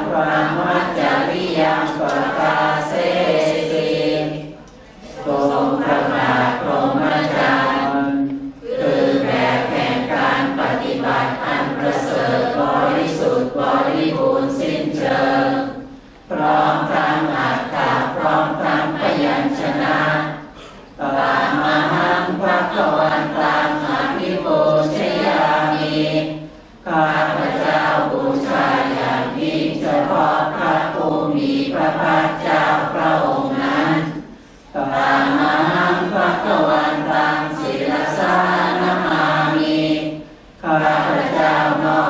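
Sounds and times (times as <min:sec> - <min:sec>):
group chanting in unison: 0:00.0 - 0:42.0.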